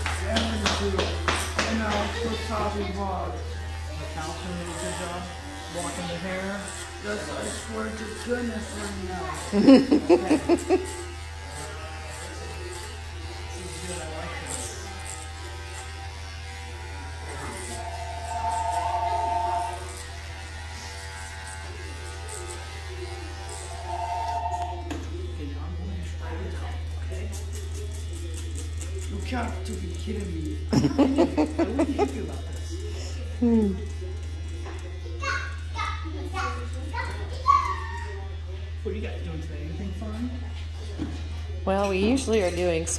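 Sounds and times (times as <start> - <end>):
electric hair clippers buzzing: 0.0 - 37.4, 38.0 - 40.2
indistinct background speech: 0.0 - 42.9.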